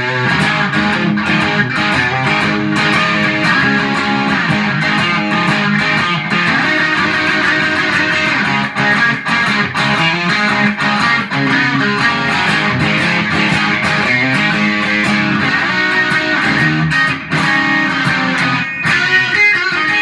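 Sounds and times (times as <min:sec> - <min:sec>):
overdriven electric guitar: 0:00.0 - 0:20.0.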